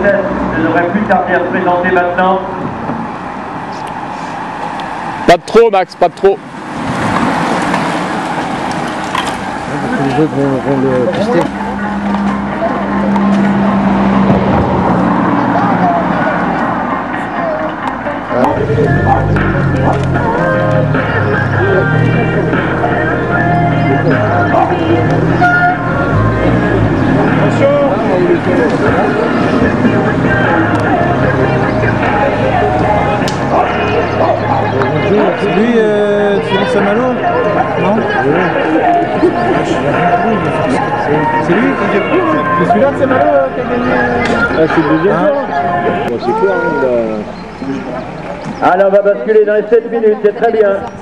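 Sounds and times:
loudspeaker voices: 0.0s - 6.5s, 7.9s - 51.0s
road noise hiss: 0.0s - 51.0s
racing bicycles approaching: 6.4s - 35.6s
car driving past: 6.4s - 37.8s
music: 15.9s - 35.7s, 36.5s - 46.1s.

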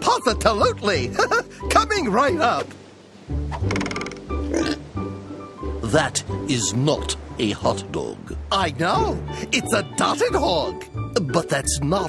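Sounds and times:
comic pig grunt: 3.8s - 4.8s.

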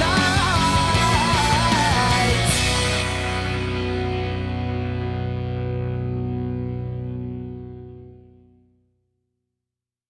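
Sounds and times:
electric guitar chord ringing: 0.0s - 8.7s.

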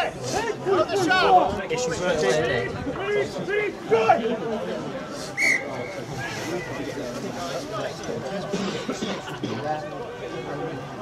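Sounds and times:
players' voices: 0.0s - 11.0s
referee's whistle blast: 5.4s - 6.0s.

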